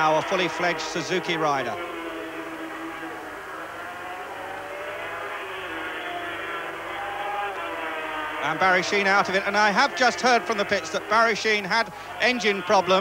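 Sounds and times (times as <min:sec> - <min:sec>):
racing motorcycle engines revving: 0:00.0 - 0:13.0.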